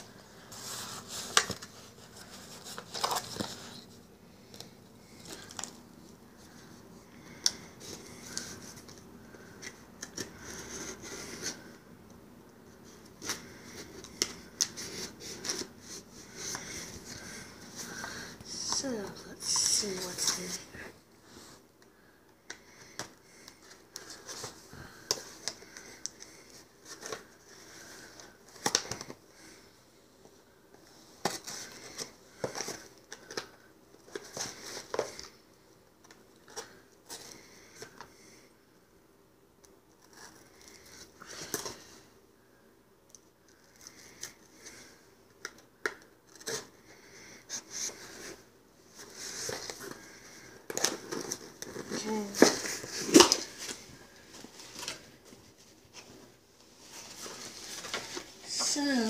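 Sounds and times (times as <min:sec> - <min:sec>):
cardboard and paper rustling: 0:00.0 - 0:11.8, 0:12.8 - 0:20.8, 0:22.6 - 0:29.6, 0:30.7 - 0:35.4, 0:43.6 - 0:59.0.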